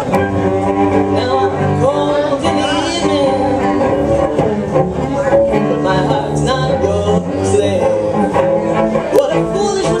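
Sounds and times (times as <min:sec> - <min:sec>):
bowed cellos playing: 0:00.0 - 0:10.0.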